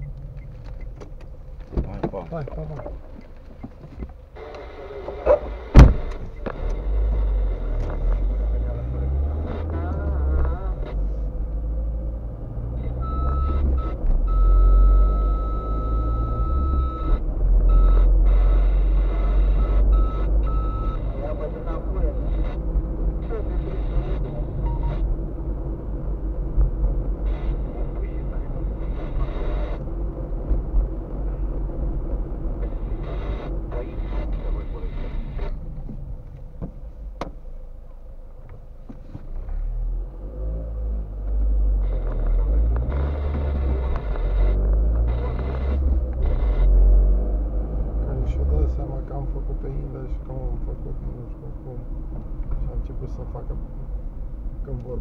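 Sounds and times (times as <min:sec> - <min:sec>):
car engine and road rumble: 0:00.0 - 0:55.0
high beeps: 0:12.8 - 0:21.4, 0:23.2 - 0:25.0.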